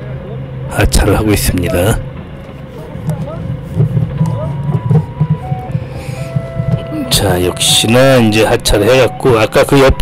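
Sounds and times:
forklift engine running: 0:00.0 - 0:10.0.

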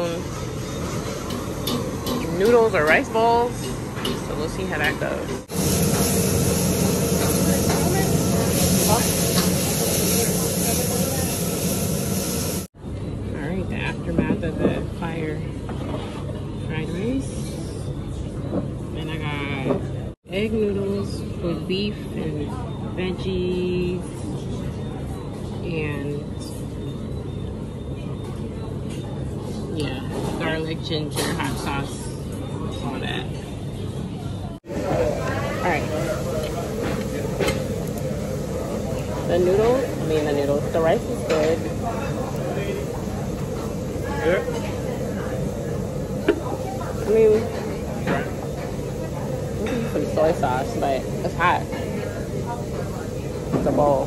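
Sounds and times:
woks hissing and sizzling: 0:00.0 - 0:12.7, 0:34.6 - 0:54.0.

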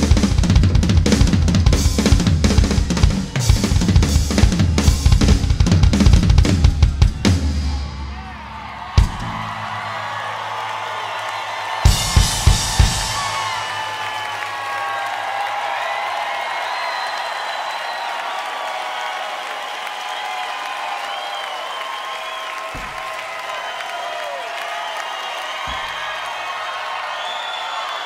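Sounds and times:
crowd applauding and cheering: 0:00.0 - 0:28.0
whistles and whoops: 0:06.6 - 0:28.0.

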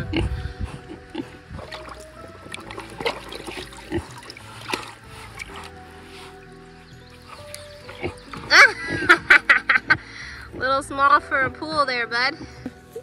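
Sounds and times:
pig slurping and splashing water: 0:00.0 - 0:09.9
background music with held tones: 0:00.0 - 0:13.0
sharp wet clicks: 0:07.1 - 0:08.5.

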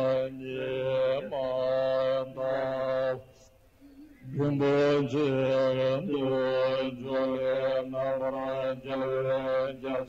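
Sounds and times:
man chanting: 0:00.0 - 0:03.4, 0:04.0 - 0:10.0.

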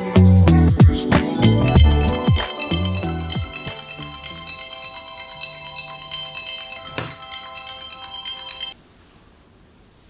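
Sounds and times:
alarm ringtone chiming melody: 0:01.3 - 0:08.8.

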